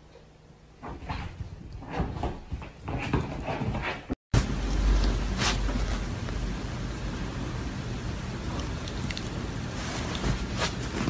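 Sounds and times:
dog playing and scuffling: 0.8 - 4.2, 8.9 - 11.0.

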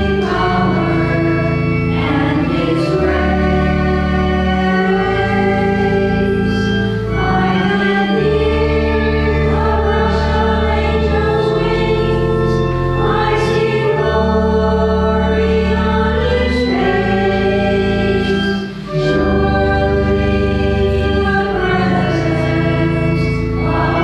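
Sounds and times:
church choir singing a hymn: 0.0 - 24.0.

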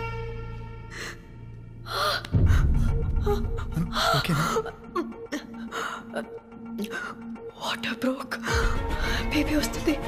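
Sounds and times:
background film music: 0.0 - 10.0
woman sobbing and gasping: 1.9 - 7.3.

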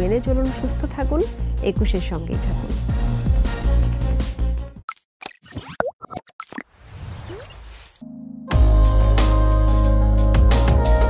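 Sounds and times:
cartoon bubble plops and pops: 5.2 - 6.7.

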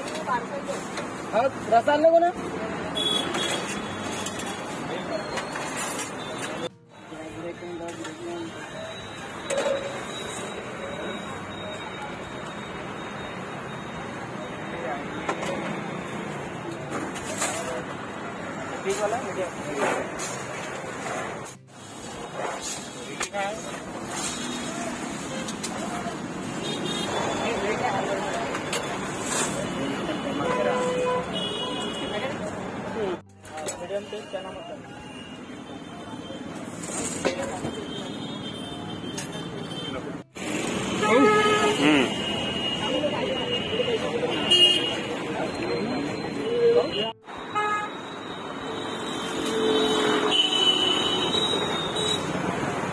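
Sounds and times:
roadside traffic: 0.0 - 52.9
people talking: 27.1 - 38.0, 41.0 - 47.2.

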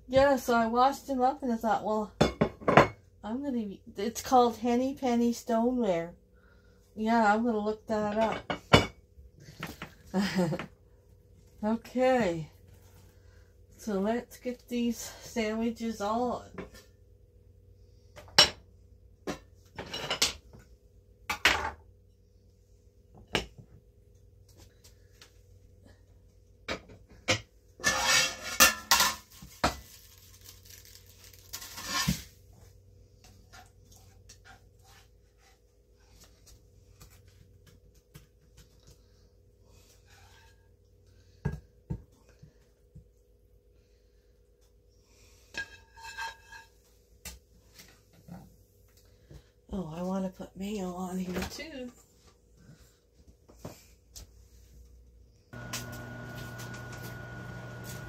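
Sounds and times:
frying pan and utensils clattering: 2.2 - 3.0, 19.3 - 20.4, 27.3 - 29.3, 45.6 - 46.8
faint steady hum: 3.0 - 27.5.

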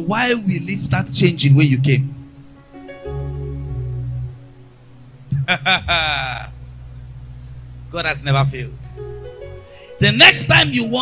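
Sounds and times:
low keyboard tone: 0.0 - 11.0
man laughing into microphone: 5.3 - 6.6
man speaking: 5.8 - 6.6, 7.9 - 8.8, 10.0 - 11.0.

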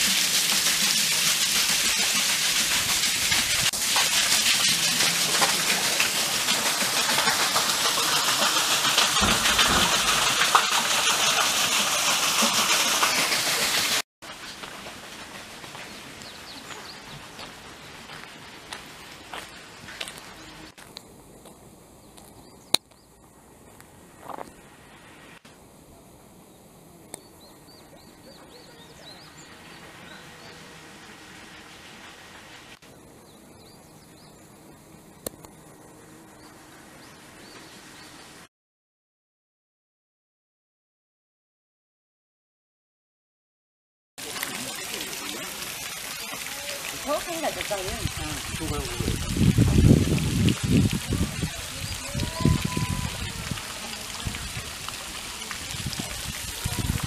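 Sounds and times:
fountain spray splashing water: 0.0 - 21.1, 27.7 - 32.8, 44.2 - 57.0
faint voices: 51.0 - 57.0.

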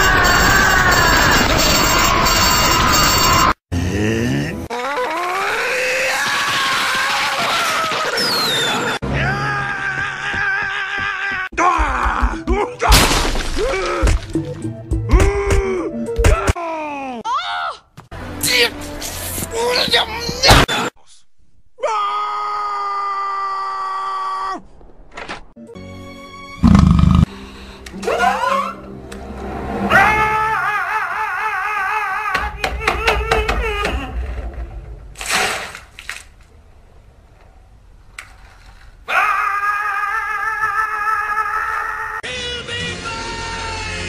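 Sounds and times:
cartoon character screaming: 4.7 - 8.2
music: 11.6 - 13.0, 13.8 - 16.6, 18.1 - 20.5, 25.6 - 30.6, 42.2 - 44.0.

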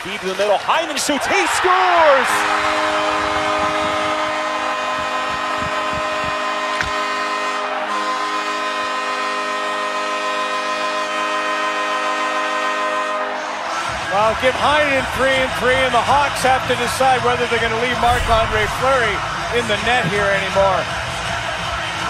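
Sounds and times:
crowd cheering: 0.6 - 9.2, 17.8 - 22.0
goal horn blast: 2.3 - 10.6.

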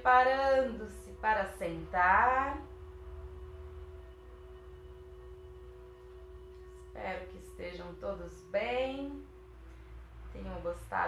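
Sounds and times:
low hum: 0.0 - 11.0
soft music of sustained tones: 0.0 - 11.0.

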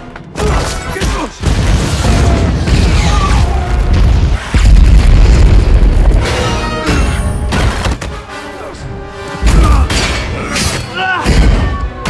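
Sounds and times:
film music score: 0.0 - 12.0.

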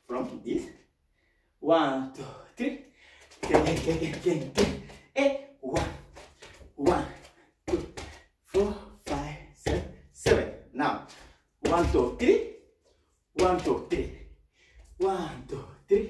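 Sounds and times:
man vocalising rhythmic syllables: 0.0 - 0.8, 1.6 - 12.7, 13.3 - 16.0
bare feet on wooden floor: 5.7 - 10.4.

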